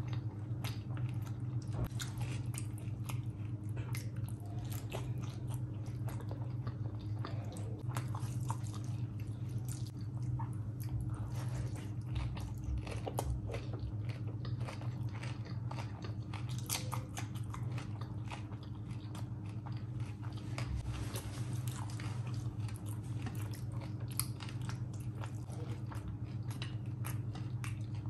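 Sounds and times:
close chewing with wet clicks: 0.0 - 20.9, 21.7 - 28.0.

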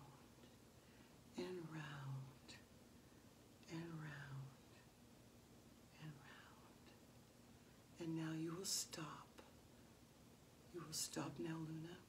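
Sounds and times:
woman speaking softly: 1.3 - 2.7, 3.6 - 4.9, 5.9 - 7.0, 8.0 - 9.5, 10.7 - 12.0.

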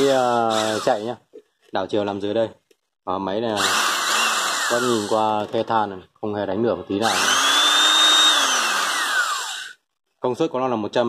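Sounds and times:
electric screwdriver motor whining: 0.0 - 1.1, 3.6 - 5.6, 7.0 - 9.8.

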